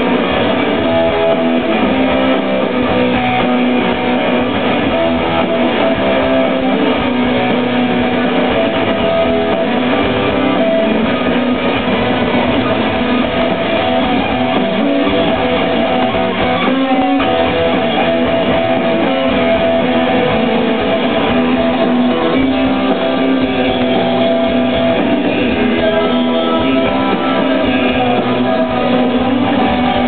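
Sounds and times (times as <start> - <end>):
live rock band playing: 0.0 - 30.0.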